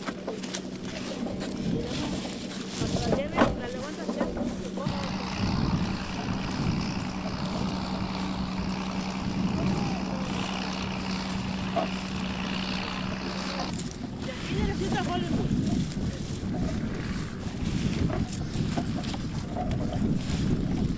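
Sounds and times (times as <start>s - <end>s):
faint voices: 0.0s - 20.9s
steady low hum: 0.0s - 20.9s
wind on microphone: 1.1s - 20.9s.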